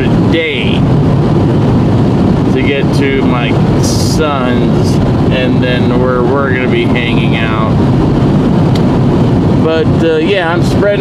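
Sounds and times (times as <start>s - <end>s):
man's voice: 0.0s - 0.9s, 2.5s - 7.8s, 9.6s - 11.0s
car road noise rumble: 0.0s - 11.0s.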